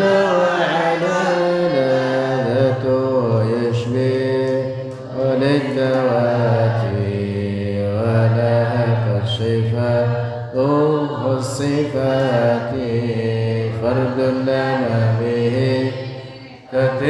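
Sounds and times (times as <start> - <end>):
man chanting devotional verse: 0.0 - 17.0.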